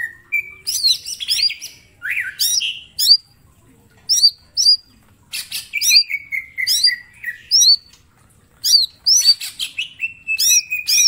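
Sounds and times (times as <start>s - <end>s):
bird singing: 0.0s - 3.3s, 4.1s - 8.0s, 8.6s - 11.0s.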